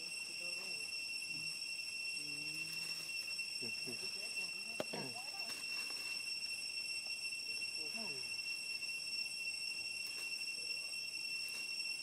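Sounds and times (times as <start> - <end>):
high-pitched insect whine: 0.0 - 12.0.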